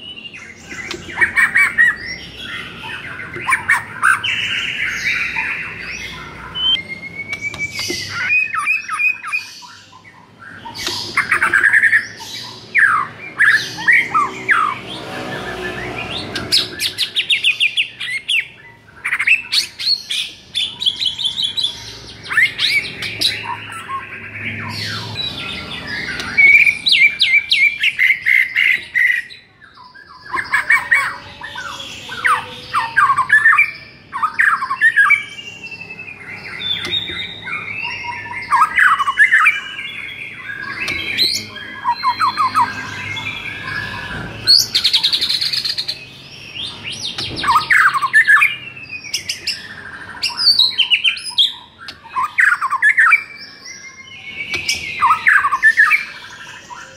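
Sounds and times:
bird whistling and chattering: 0.0s - 14.8s, 30.0s - 56.9s.

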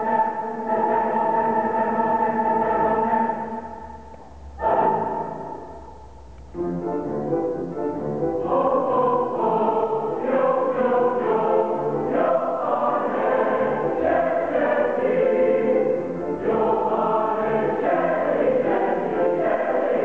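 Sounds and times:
choir singing in harmony: 0.0s - 6.0s, 8.0s - 20.0s.

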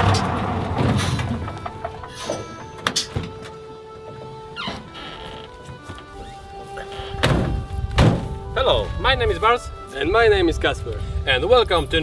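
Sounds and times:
truck doors slamming: 0.0s - 5.7s, 6.8s - 8.5s.

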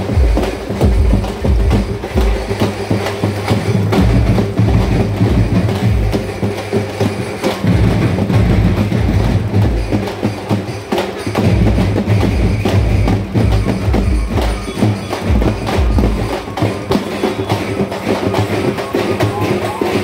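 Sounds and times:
percussion music with drum thumps: 0.0s - 20.0s.

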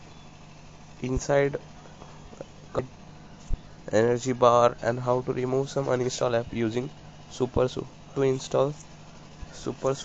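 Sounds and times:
low steady hum: 0.0s - 10.0s
man narrating: 1.0s - 1.7s, 2.3s - 3.0s, 3.9s - 8.8s, 9.4s - 10.0s.

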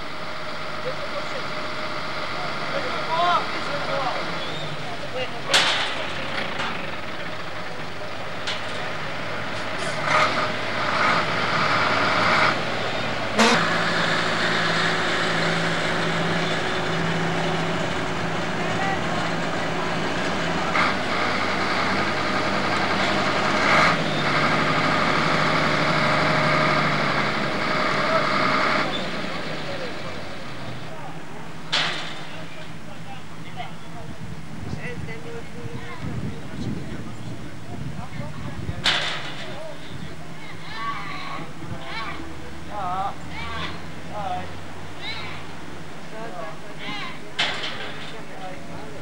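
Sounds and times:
diesel truck engine running: 0.0s - 49.0s.

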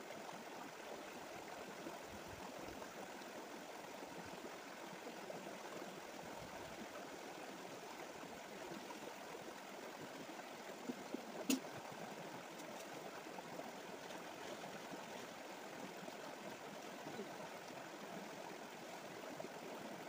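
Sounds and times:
stream running over stones: 0.0s - 20.0s.

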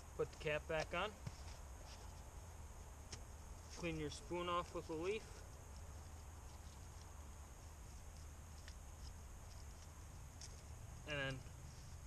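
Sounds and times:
faint low outdoor rumble: 0.0s - 12.0s.

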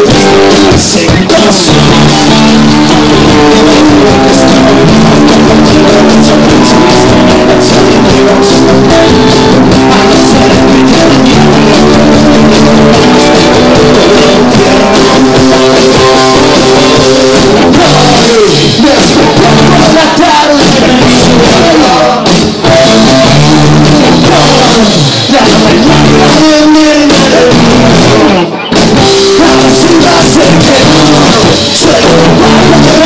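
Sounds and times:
bass guitar: 0.0s - 33.0s
drum kit: 0.0s - 33.0s
electric guitars: 0.0s - 33.0s.

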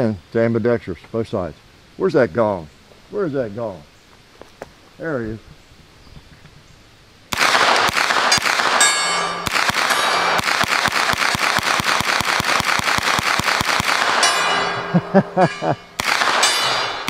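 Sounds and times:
rapid gunshots: 7.3s - 14.6s, 16.0s - 17.0s
steel gong ringing: 8.8s - 10.4s, 14.2s - 17.0s.

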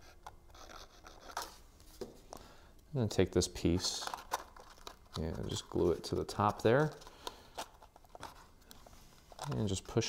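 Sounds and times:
cardstock clicks and crinkles: 3.7s - 10.0s.

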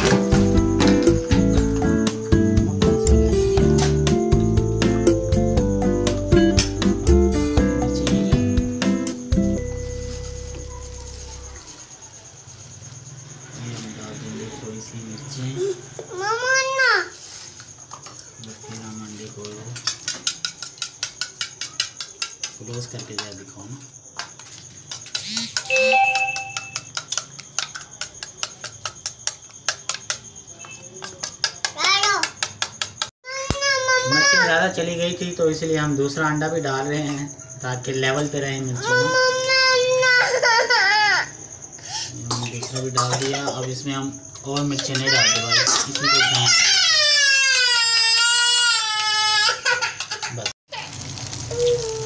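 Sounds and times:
spoon beating eggs in steel bowl: 19.8s - 23.4s
bell-like ringing tone: 25.7s - 26.9s
young child crying: 38.8s - 41.3s, 51.5s - 52.0s.

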